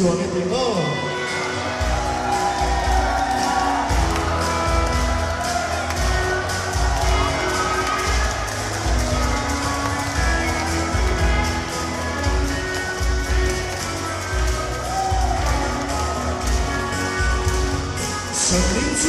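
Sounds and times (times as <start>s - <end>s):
live band playing: 0.0s - 19.0s.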